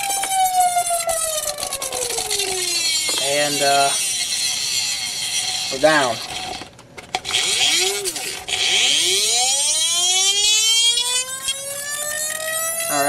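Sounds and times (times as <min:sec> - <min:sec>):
motor whining rising in pitch: 0:00.0 - 0:05.6, 0:07.2 - 0:13.0.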